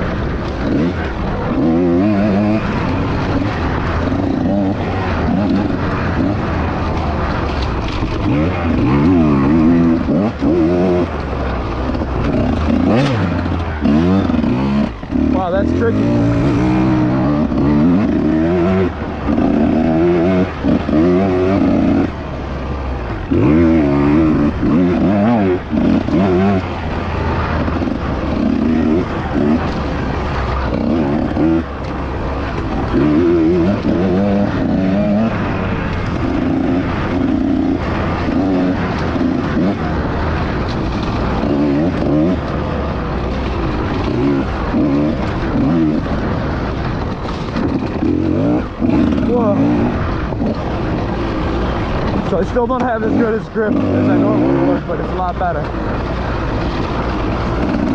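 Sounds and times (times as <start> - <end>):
dirt bike engine revving: 0.0 - 57.9.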